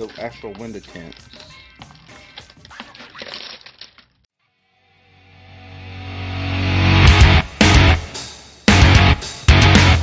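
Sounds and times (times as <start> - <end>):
plastic film crinkling: 0.0 - 4.3
background music: 5.2 - 10.0.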